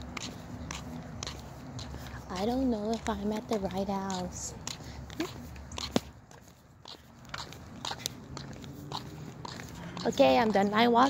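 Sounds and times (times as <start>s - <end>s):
sandal footsteps on concrete: 0.0s - 11.0s.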